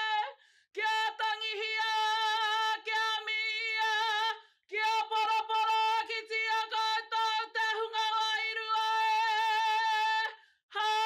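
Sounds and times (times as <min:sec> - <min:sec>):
woman chanting: 0:00.0 - 0:11.0
woman singing unaccompanied: 0:00.0 - 0:11.0.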